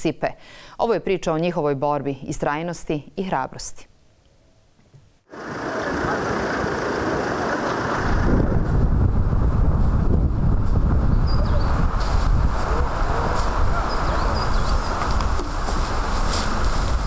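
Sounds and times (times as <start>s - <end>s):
low rumble: 5.9s - 17.0s
wind buffeting microphone: 6.0s - 17.0s.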